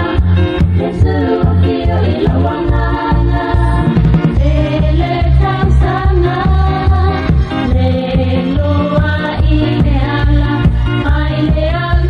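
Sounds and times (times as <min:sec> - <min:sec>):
backing band with heavy bass beat: 0:00.0 - 0:11.9
person singing gospel: 0:00.8 - 0:07.2.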